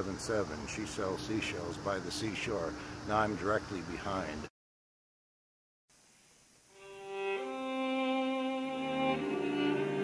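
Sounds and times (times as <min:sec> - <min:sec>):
violins playing bowed notes: 0:06.8 - 0:10.0.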